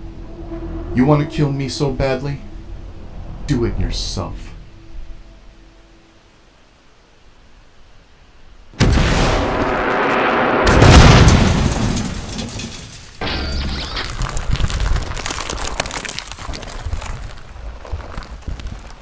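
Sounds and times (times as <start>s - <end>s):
explosion blast with deep boom: 8.8s - 12.4s
sharp crash: 8.8s - 13.8s
crackling debris: 8.8s - 19.0s.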